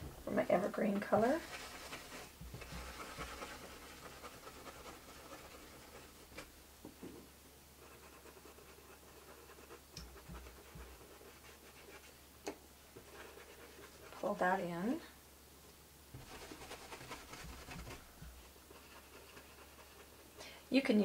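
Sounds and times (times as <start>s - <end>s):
paintbrush dabbing: 0.0s - 6.5s, 7.8s - 12.2s, 16.2s - 20.4s.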